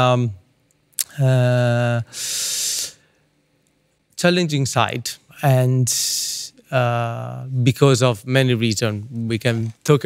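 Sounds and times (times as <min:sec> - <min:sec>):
man breathing in: 0:02.1 - 0:03.3.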